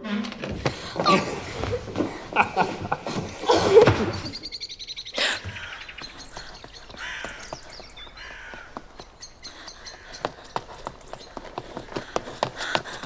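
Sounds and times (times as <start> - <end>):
small birds chirping: 3.3 - 13.0
light footsteps on stone: 5.4 - 13.0.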